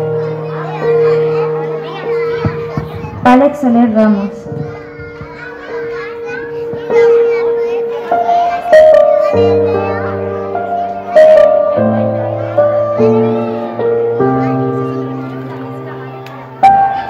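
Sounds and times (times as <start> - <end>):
background music with held notes: 0.0 - 17.0
children's voices chattering: 0.0 - 17.0.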